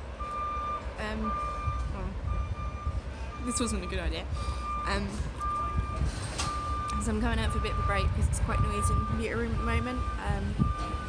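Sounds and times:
low rumble: 0.0s - 11.0s
reversing alarm beeping: 0.1s - 11.0s.

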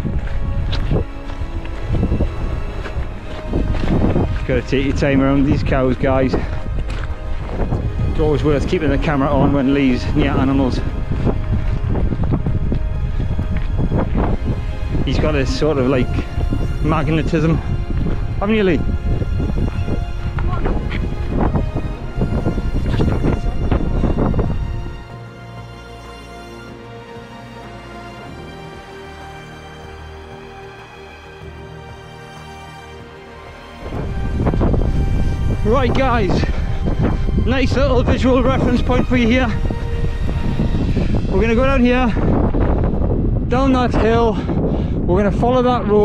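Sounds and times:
wind buffeting microphone: 0.0s - 25.6s, 33.1s - 46.0s
running footsteps on stony track: 0.0s - 26.1s, 33.0s - 41.5s
background music: 0.0s - 46.0s.

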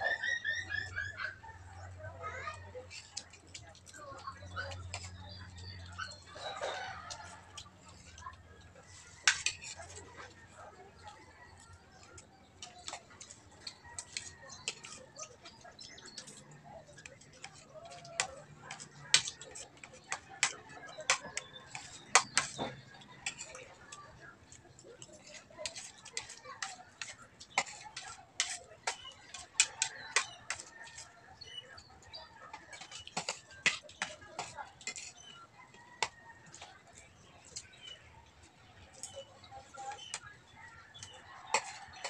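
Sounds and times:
cutlery clinking on plates: 2.9s - 10.3s, 12.1s - 38.0s, 40.9s - 42.0s.

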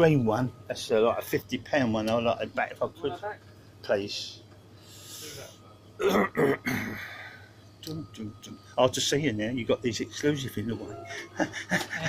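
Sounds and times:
man clearing his throat: 6.0s - 7.1s.

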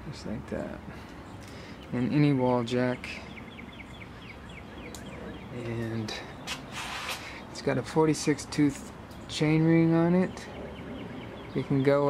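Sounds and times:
bird chirping: 0.9s - 7.7s, 8.9s - 12.0s.

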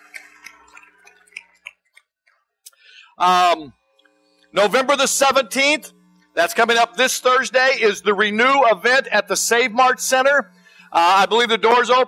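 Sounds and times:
low steady hum: 2.8s - 12.0s.

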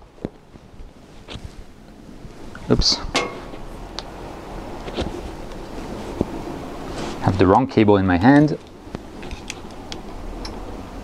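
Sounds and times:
outdoor background noise: 0.0s - 11.0s
cables being handled: 4.8s - 7.3s, 8.2s - 10.6s.

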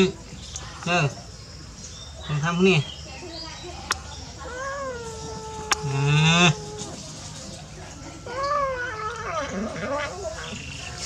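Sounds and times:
kitten meowing: 4.5s - 7.0s.

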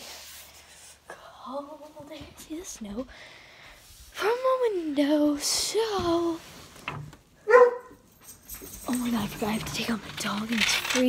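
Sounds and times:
dog barking: 7.4s - 8.0s.

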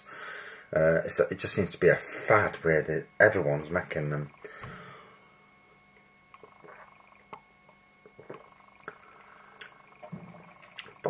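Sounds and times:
mouth clicks: 8.0s - 11.0s
man gulping beer: 8.1s - 9.0s.

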